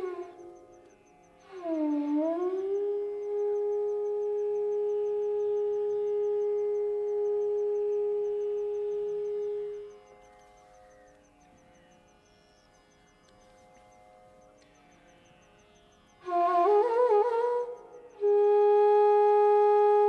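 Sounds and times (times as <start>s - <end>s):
bamboo flute playing: 0.0s - 0.6s, 1.4s - 10.0s, 16.2s - 20.0s.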